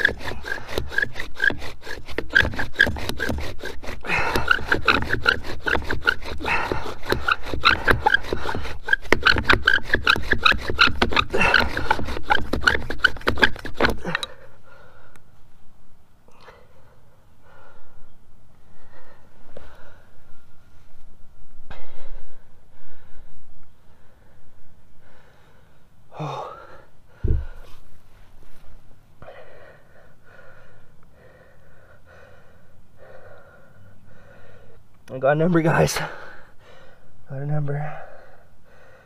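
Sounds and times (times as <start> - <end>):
man breathing hard and gasping: 13.9 - 15.3, 16.2 - 20.5, 21.6 - 27.9, 29.2 - 34.9, 36.0 - 37.2, 37.8 - 39.0
thump: 27.2 - 27.6.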